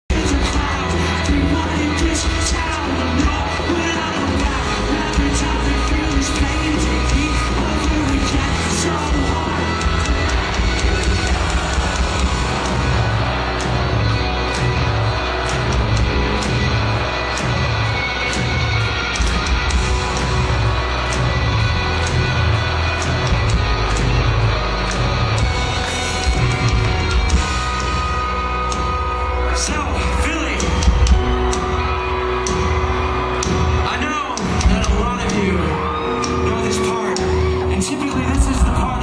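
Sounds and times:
pop-punk band playing loudly: 0:00.1 - 0:39.0.

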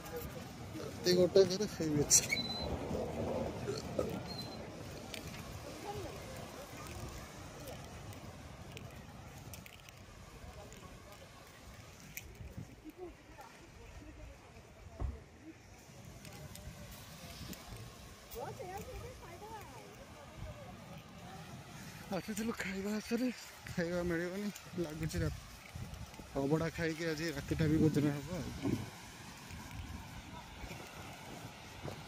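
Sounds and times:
faint distant voices: 0:00.0 - 0:32.0
low outdoor rumble: 0:00.0 - 0:32.0.

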